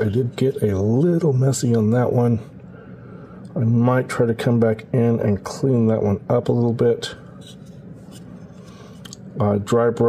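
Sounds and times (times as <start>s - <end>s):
plastic part rubbed in fingers: 7.4s - 8.8s.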